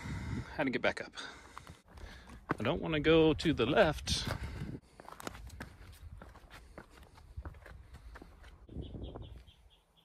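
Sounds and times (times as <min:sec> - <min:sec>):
footsteps on gritty stone: 0:01.4 - 0:08.7.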